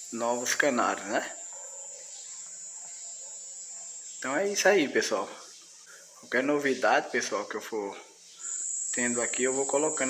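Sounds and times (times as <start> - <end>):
high-pitched whine: 0.0 - 10.0
low even hiss: 0.0 - 10.0.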